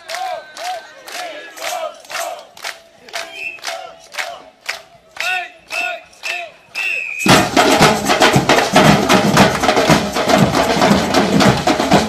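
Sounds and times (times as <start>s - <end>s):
group shouting rhythmic calls: 0.0s - 4.6s.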